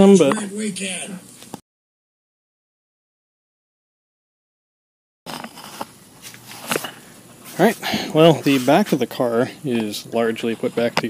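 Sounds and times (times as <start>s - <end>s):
man speaking: 0.0s - 1.3s, 7.5s - 11.0s
faint garage room noise: 5.3s - 11.0s.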